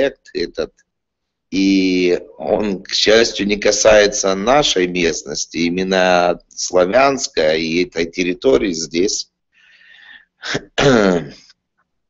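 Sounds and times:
man clearing his throat: 10.4 - 11.5.

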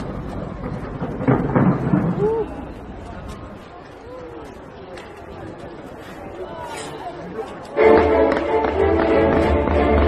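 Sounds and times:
fireworks bursting and crackling: 0.0 - 3.5.

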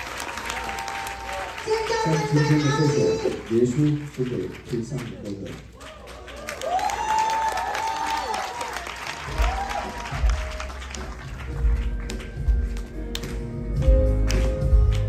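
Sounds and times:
audience applause: 0.0 - 13.4.

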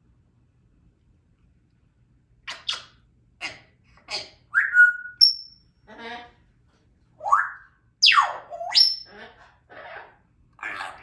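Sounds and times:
parrot whistling and chattering: 2.5 - 5.6, 7.2 - 11.0.

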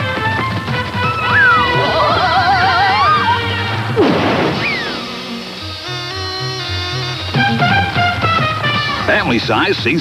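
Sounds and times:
falling whistle: 1.0 - 3.7
wavering warble: 1.1 - 3.9
cartoon crash: 1.1 - 5.5.

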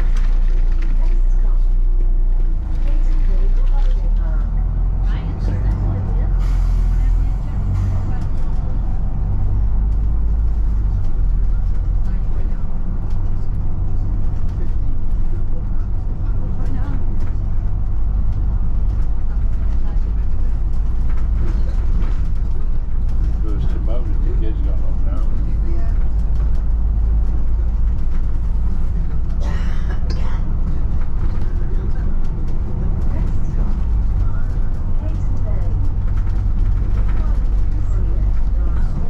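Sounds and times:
bus engine droning: 0.0 - 39.0.

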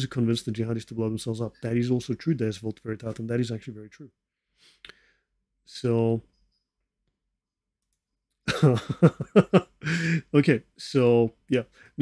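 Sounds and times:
man laughing: 8.4 - 10.3.

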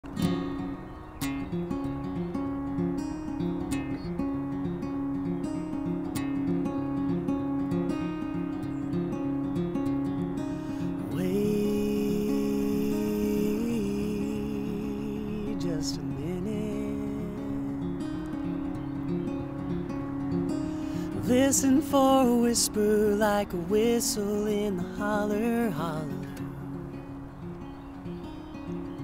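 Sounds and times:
acoustic guitar picked notes: 0.0 - 29.0
man singing wordless note: 11.0 - 18.1, 21.0 - 26.8.

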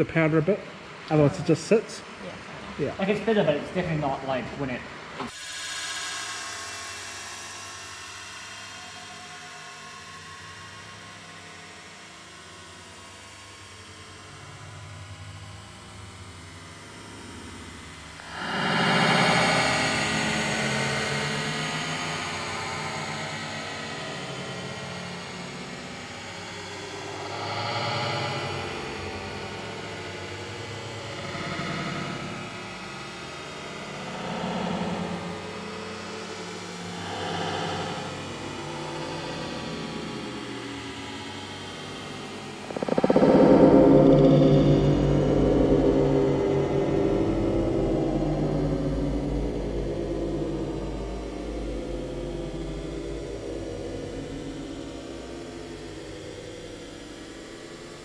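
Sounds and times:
slowed low rumbling blast: 42.2 - 57.9.

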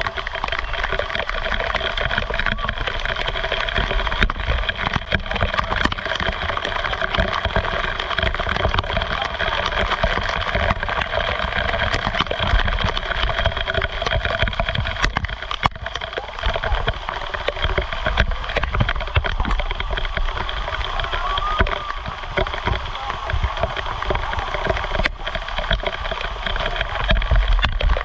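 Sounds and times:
waterfall rushing: 0.0 - 28.0.

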